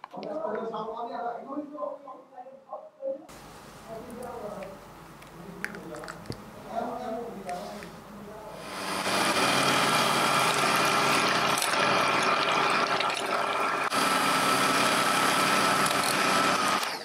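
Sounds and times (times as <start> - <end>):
electric hand mixer whisking batter: 8.6 - 17.0
mixer motor whine: 8.6 - 17.0.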